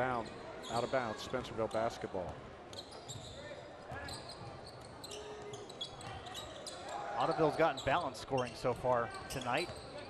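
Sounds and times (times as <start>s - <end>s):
murmur of crowd voices: 0.0s - 10.0s
sneakers squeaking: 0.2s - 2.0s, 2.7s - 10.0s.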